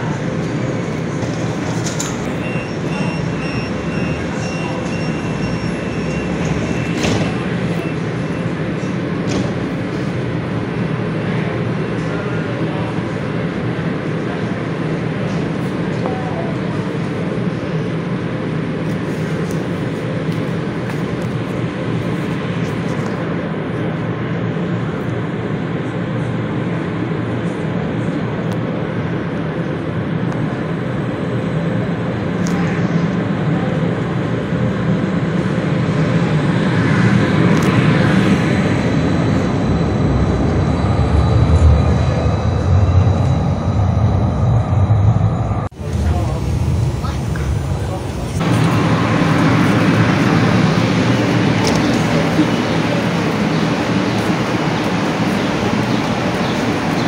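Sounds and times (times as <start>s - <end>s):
light-rail train rumbling: 0.0s - 57.0s
street noise: 0.0s - 57.0s.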